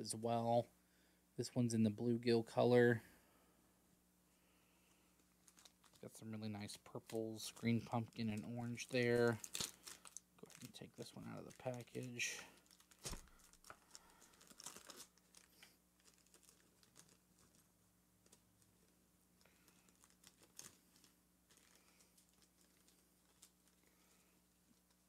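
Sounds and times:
plastic package crackling: 5.2 - 6.1, 6.7 - 24.1.

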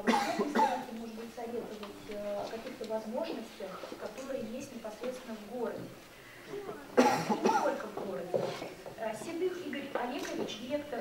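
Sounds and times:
loud cough: 0.0 - 0.9, 7.0 - 7.8
person speaking: 0.0 - 11.0.

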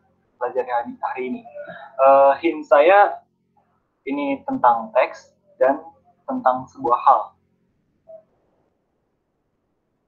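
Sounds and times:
brief tone: 8.0 - 8.4.

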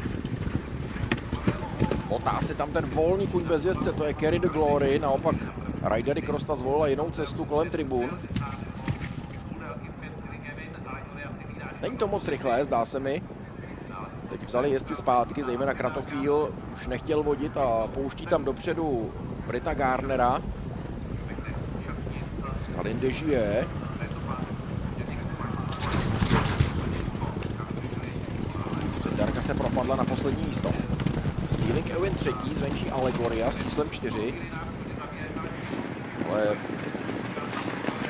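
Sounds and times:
horses galloping on turf: 0.0 - 38.0.

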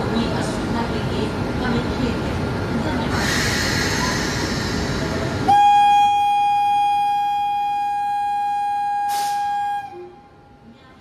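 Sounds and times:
locomotive horn blast: 5.5 - 10.4.

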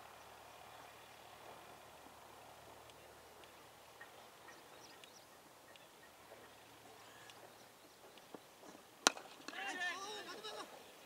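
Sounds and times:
cricket bat striking ball: 9.0 - 9.6
players shouting: 9.5 - 10.8.

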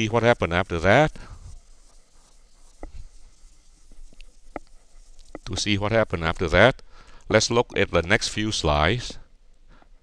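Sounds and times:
man speaking: 0.0 - 1.2, 5.4 - 9.3
stylus scratching on tablet: 0.0 - 6.8.

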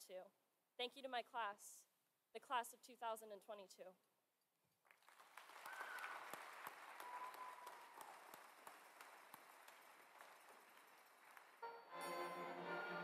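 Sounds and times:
distant audience applause: 4.9 - 11.7.

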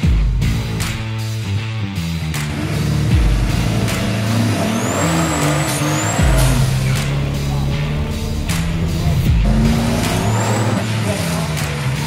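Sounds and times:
rock music with deep bass: 0.0 - 12.0
car engine revving: 2.0 - 12.0.

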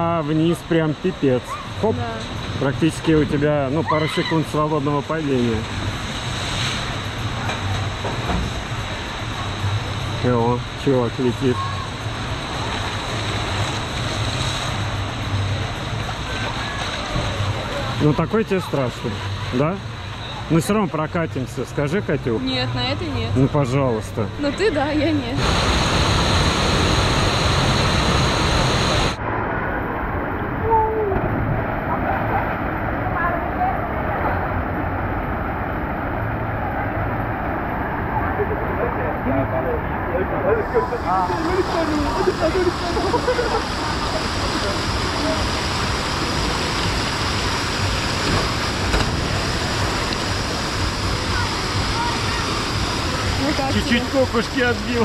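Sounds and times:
water rushing: 0.0 - 55.0
distant voices: 25.1 - 55.0.

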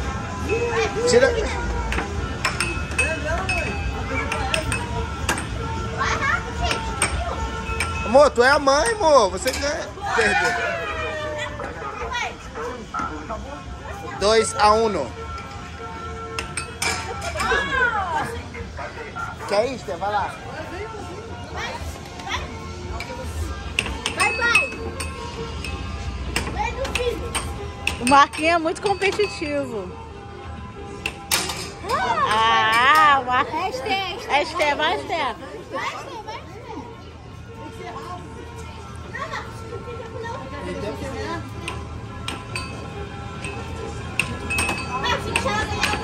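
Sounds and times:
background music: 0.0 - 46.0
air hockey puck and mallets clacking: 1.9 - 5.6, 6.7 - 8.0, 16.4 - 17.5, 23.8 - 29.5, 31.0 - 33.1, 41.7 - 42.8, 43.4 - 46.0.

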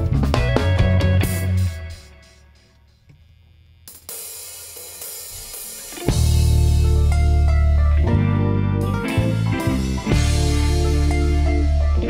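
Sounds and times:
live rock band playing: 0.0 - 2.4, 5.0 - 12.0
cymbal wash: 3.9 - 7.0.

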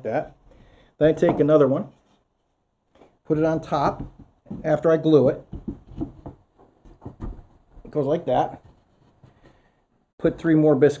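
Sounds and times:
light wooden knocks and rubs: 3.0 - 9.7.

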